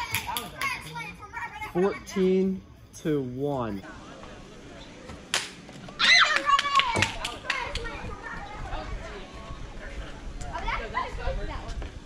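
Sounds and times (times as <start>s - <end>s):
child yelling: 0.0s - 2.1s, 6.0s - 8.3s
quick sharp claps: 5.3s - 5.6s.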